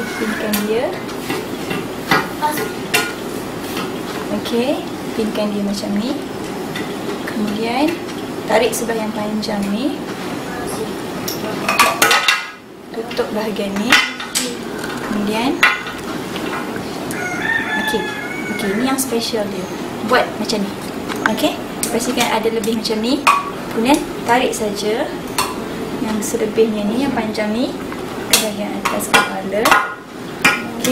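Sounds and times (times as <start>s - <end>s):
rooster crowing: 0.0s - 0.7s, 17.1s - 19.5s.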